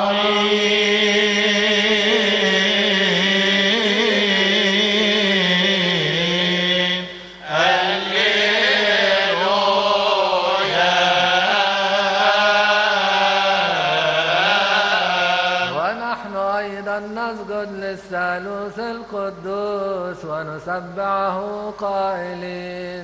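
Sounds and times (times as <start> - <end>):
choir chanting in unison: 0.0 - 16.2
man chanting alone: 0.0 - 23.0.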